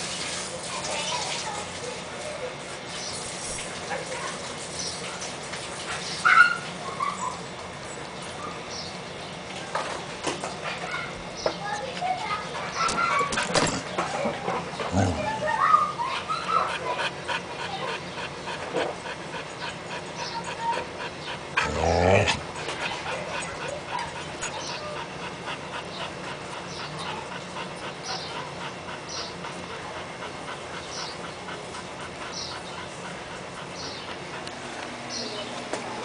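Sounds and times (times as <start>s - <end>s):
dog panting: 9.8s - 36.0s.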